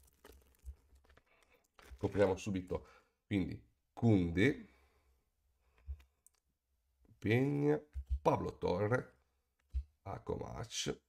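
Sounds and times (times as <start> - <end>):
foil wrapper crinkling and tearing: 0.0 - 2.5.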